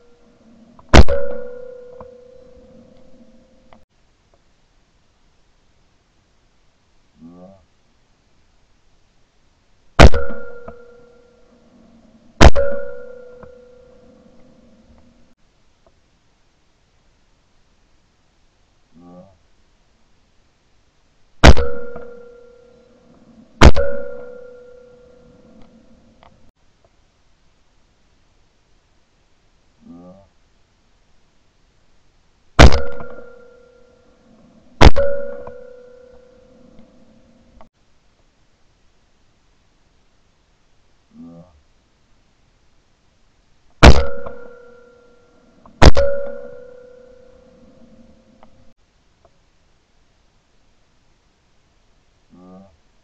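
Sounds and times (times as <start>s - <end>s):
shotgun shot: 0.9s - 1.8s, 10.0s - 11.0s, 12.4s - 13.5s, 21.4s - 22.4s, 23.6s - 24.6s, 32.6s - 33.4s, 34.8s - 35.7s, 43.8s - 44.7s, 45.8s - 46.7s
ringing tone: 0.9s - 3.7s, 10.1s - 11.6s, 12.5s - 14.8s, 21.5s - 26.1s, 32.7s - 34.2s, 34.8s - 37.4s, 43.9s - 48.4s.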